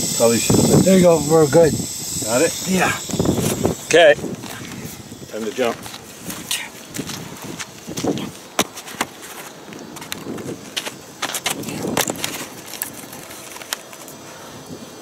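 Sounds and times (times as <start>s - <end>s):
person crawling over gravel: 4.4s - 14.4s.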